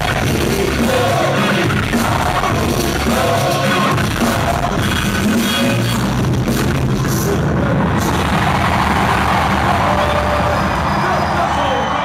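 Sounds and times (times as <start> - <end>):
music bass: 0.0 - 11.6
crowd roar: 0.0 - 12.0.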